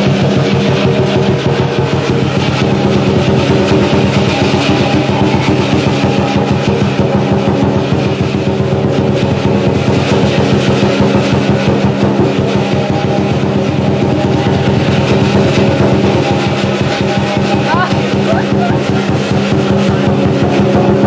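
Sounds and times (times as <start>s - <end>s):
cymbals clashing: 0.0s - 21.0s
drum beating: 0.0s - 21.0s
gong: 0.0s - 21.0s.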